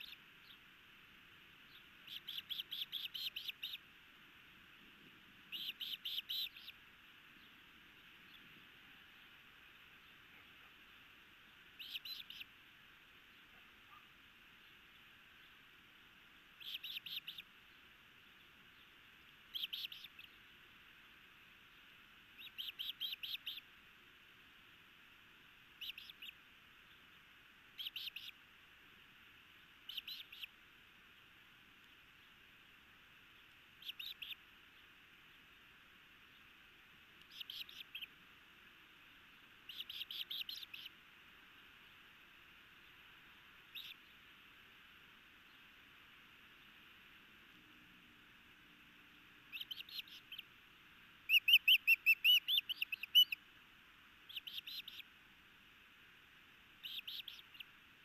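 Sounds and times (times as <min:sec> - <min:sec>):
osprey chirping: 0:00.0 - 0:00.6, 0:01.6 - 0:03.9, 0:05.4 - 0:07.6, 0:11.7 - 0:12.5, 0:16.6 - 0:17.5, 0:18.4 - 0:20.4, 0:22.3 - 0:23.7, 0:25.8 - 0:27.1, 0:27.8 - 0:28.4, 0:29.8 - 0:30.6, 0:33.8 - 0:34.4, 0:37.2 - 0:38.2, 0:39.6 - 0:41.0, 0:43.6 - 0:44.2, 0:49.4 - 0:50.6, 0:51.2 - 0:53.4, 0:54.2 - 0:55.1, 0:56.8 - 0:57.7
faint steady hiss: 0:00.0 - 0:58.0.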